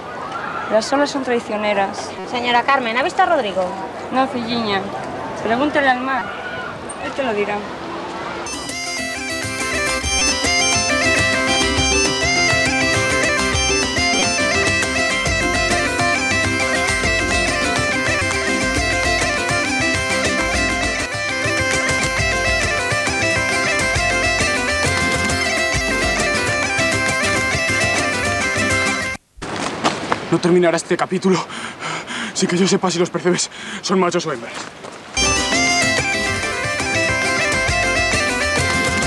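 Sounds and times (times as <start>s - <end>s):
low pulsing beat: 8.5s - 29.0s, 35.2s - 39.0s
bagpipe melody with drone: 8.5s - 29.2s, 35.2s - 39.0s.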